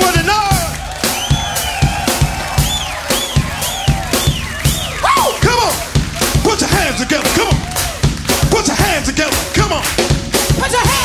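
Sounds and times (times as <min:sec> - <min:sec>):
live funk band playing: 0:00.0 - 0:11.0
steady drum beat: 0:00.0 - 0:11.0.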